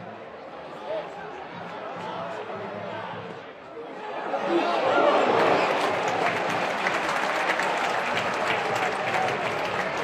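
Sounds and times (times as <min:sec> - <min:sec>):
stadium crowd applauding and shouting: 0:00.0 - 0:10.0.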